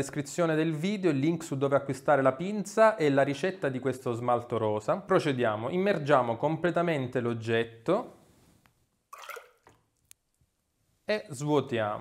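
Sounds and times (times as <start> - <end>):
liquid glaze sloshing: 9.1 - 9.8.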